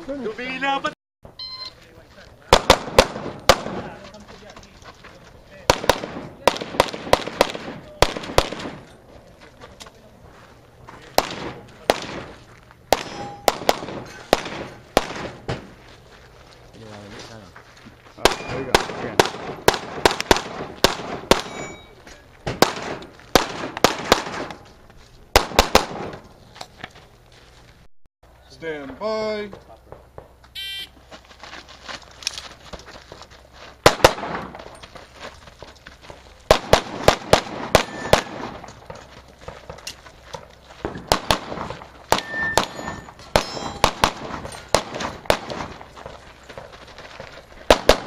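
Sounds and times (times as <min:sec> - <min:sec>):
pistol shots: 0:02.5 - 0:03.9, 0:05.7 - 0:08.9, 0:11.2 - 0:15.7, 0:18.2 - 0:21.8, 0:22.5 - 0:24.6, 0:25.4 - 0:26.2, 0:33.8 - 0:34.6, 0:36.5 - 0:38.8, 0:41.0 - 0:45.8, 0:47.7 - 0:48.0
steel target ringing: 0:13.0 - 0:13.6, 0:21.4 - 0:22.0, 0:37.8 - 0:38.3, 0:42.2 - 0:44.7.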